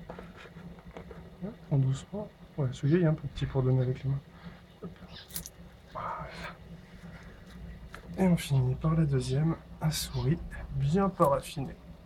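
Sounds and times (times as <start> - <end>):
faint low hum: 0.0 - 12.0
man speaking: 1.4 - 4.3, 8.2 - 11.8.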